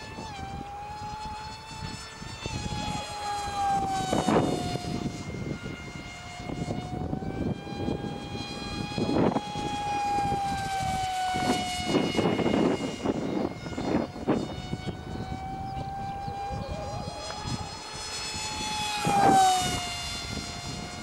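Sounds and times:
model jet motor whining: 0:00.0 - 0:21.0.

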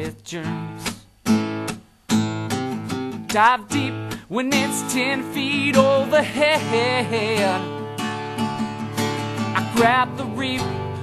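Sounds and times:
acoustic guitar chords strummed: 0:00.0 - 0:11.0.

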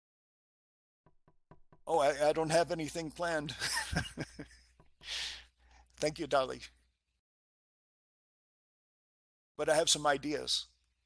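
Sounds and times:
man speaking: 0:01.9 - 0:03.6, 0:06.0 - 0:06.8, 0:09.6 - 0:10.7.

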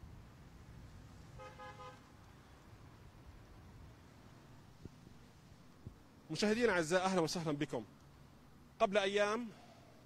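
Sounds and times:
faint street traffic rumble: 0:00.0 - 0:10.0
car horn beep: 0:01.4 - 0:02.0.

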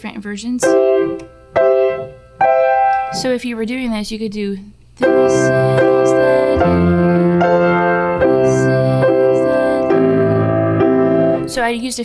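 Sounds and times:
grand piano chords: 0:00.6 - 0:03.4, 0:05.0 - 0:12.0.

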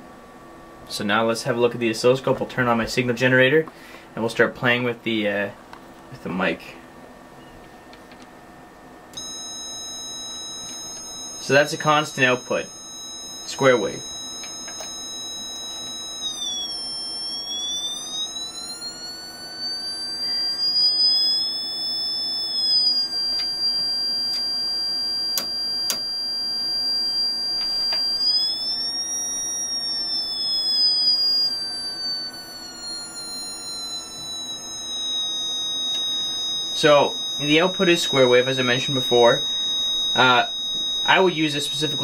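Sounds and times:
high-pitched electronic test tone: 0:09.2 - 0:42.0
clicks: 0:14.4 - 0:15.0, 0:25.4 - 0:26.1, 0:27.6 - 0:28.3.

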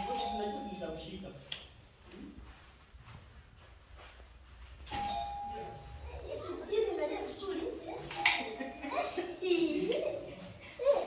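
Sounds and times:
two-note doorbell chime: 0:00.0 - 0:01.1, 0:04.9 - 0:06.0.

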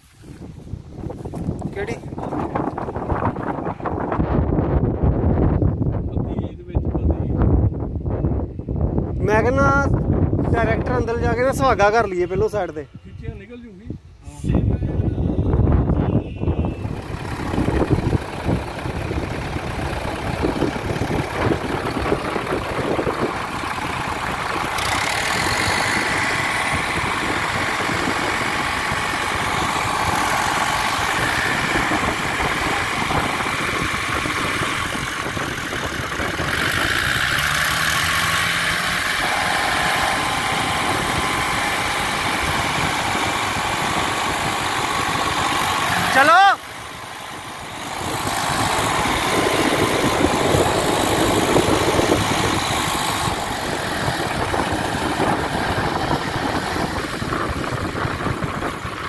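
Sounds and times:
tractor diesel engines under load: 0:00.0 - 0:14.5, 0:15.2 - 0:59.0
man shouting: 0:46.0 - 0:46.7.

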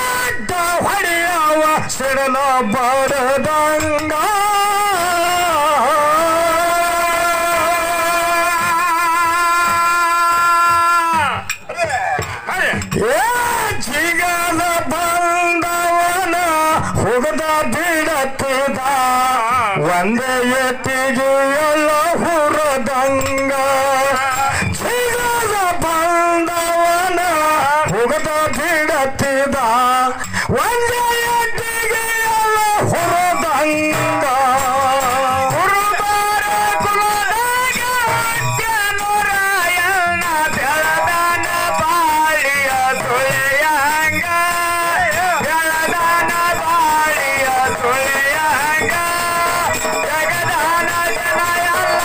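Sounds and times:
man singing folk song: 0:00.0 - 0:52.0.

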